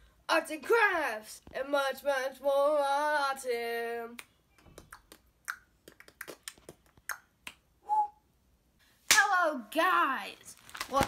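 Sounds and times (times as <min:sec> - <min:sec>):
fingers snapping: 0:04.2 - 0:07.6.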